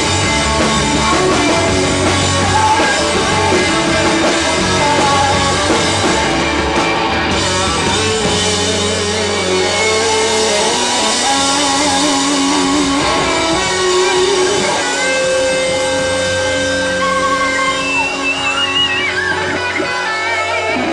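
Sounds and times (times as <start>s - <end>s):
electric guitars holding long notes: 0.0s - 20.9s
indie rock band playing live: 0.0s - 20.9s.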